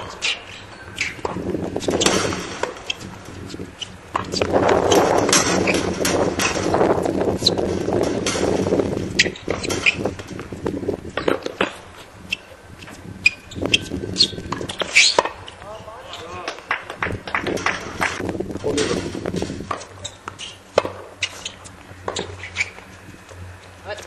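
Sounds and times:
tennis balls struck by rackets: 0.0 - 18.3, 18.9 - 22.8
balls bouncing on hard court: 0.0 - 22.9
people talking: 15.6 - 16.6, 18.5 - 19.2.

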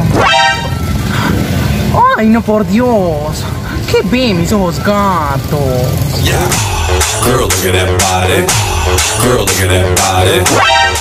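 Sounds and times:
bright horn toot: 0.1 - 1.1.

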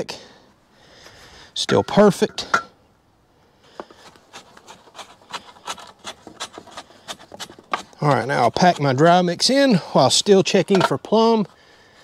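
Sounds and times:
rake handle scraping concrete mix: 3.8 - 11.6.

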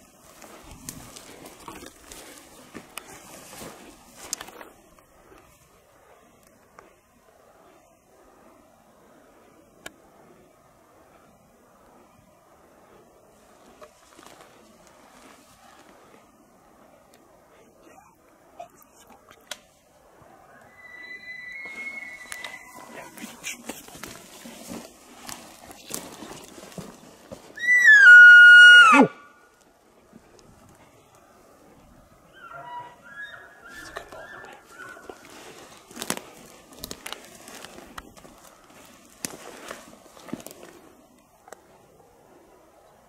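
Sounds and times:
rustling: 0.0 - 9.2, 12.8 - 17.6, 21.2 - 27.6, 29.5 - 42.5
high mewing call: 20.5 - 23.2, 27.6 - 29.4, 32.3 - 35.2.

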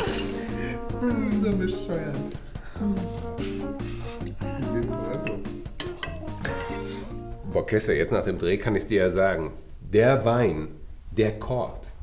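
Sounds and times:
light instrumental tune: 0.0 - 8.0.

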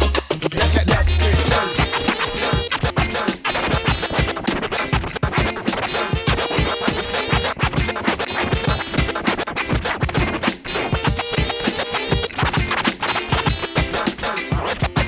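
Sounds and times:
instrumental hip hop beat: 0.0 - 15.0
record scratching: 0.0 - 15.0.

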